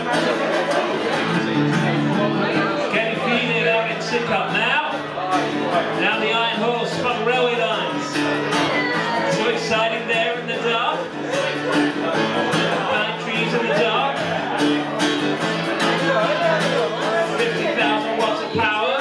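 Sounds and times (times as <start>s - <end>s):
electric guitar strumming: 0.0s - 19.0s
man singing: 0.0s - 19.0s.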